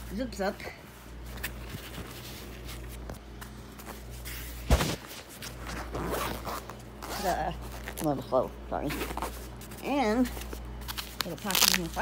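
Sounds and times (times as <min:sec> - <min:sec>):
zipper being drawn closed: 0:05.8 - 0:07.4.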